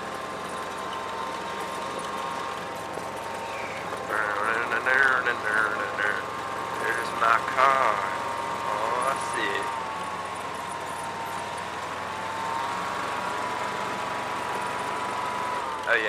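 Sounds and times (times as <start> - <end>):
utility vehicle engine whine: 0.0 - 16.0.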